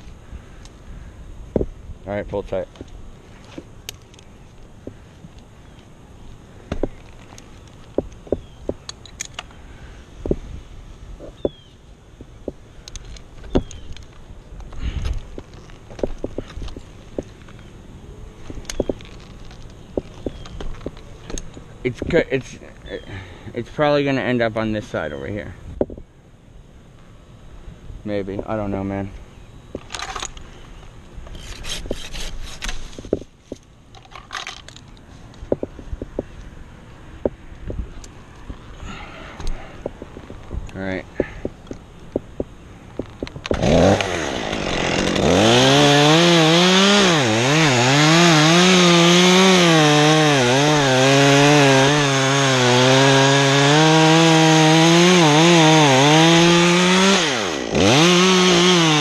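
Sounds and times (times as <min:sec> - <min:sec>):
rope scraping against tree trunk: 0:31.3 - 0:33.6.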